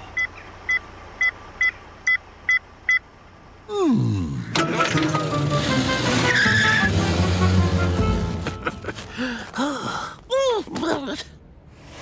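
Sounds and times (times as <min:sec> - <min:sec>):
comic sound effects: 0:04.5 - 0:08.6
cartoon background music: 0:04.6 - 0:08.7.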